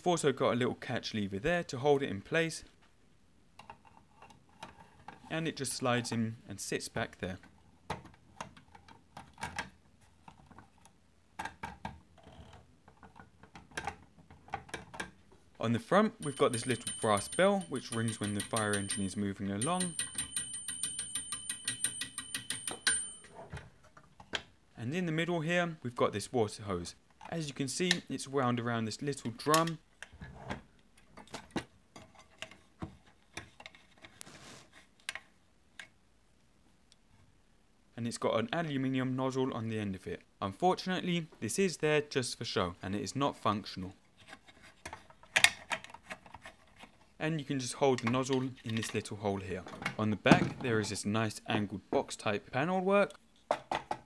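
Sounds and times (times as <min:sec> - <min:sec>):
metal ladder clicks and taps: 0:16.2 - 0:23.2
soft rustle: 0:33.8 - 0:35.0.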